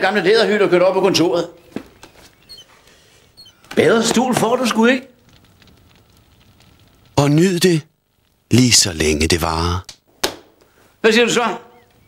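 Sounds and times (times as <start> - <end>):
faint crackling fire: 0.1 - 12.0.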